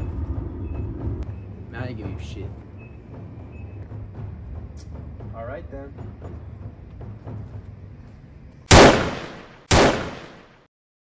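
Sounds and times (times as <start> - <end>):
pistol gunshot with echo: 8.7 - 10.6.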